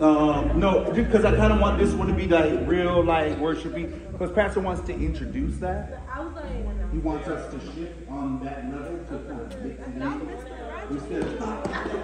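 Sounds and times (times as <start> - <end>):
low hum: 0.0 - 10.3
women talking: 5.9 - 7.3, 9.5 - 12.0.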